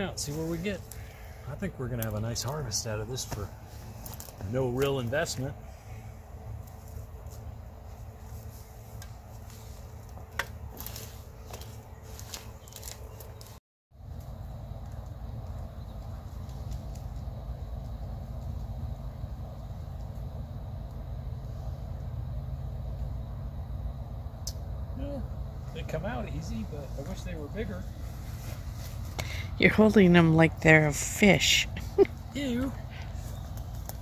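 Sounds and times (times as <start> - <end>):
dry mulch and vines crackling: 0.0 - 23.2, 24.4 - 34.0
steady low rumble: 0.0 - 34.0.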